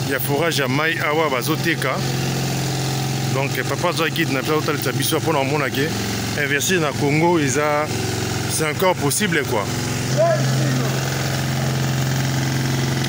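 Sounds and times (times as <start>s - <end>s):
people talking: 0.0s - 2.0s, 3.3s - 7.9s, 8.5s - 11.2s.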